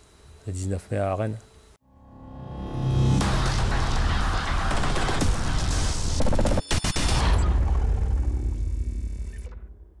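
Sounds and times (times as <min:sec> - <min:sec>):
dense stuttering burst: 0:02.7 - 0:09.1.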